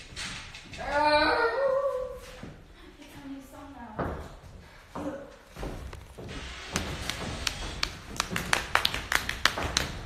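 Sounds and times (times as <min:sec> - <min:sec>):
dancers tapping on stage: 0:05.0 - 0:10.0.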